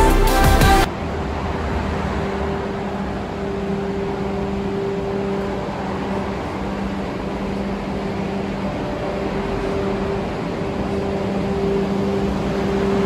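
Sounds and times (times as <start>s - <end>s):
building ventilation hum: 0.0s - 13.0s.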